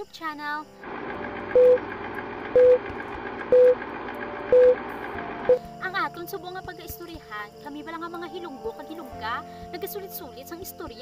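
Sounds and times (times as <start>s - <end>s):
short beeps: 2.6s - 2.8s, 3.5s - 3.8s, 4.5s - 4.8s.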